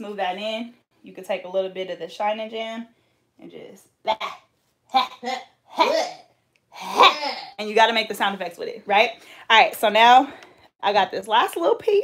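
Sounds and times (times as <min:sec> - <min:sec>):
woman making vocal sound effects: 0:04.1 - 0:06.2.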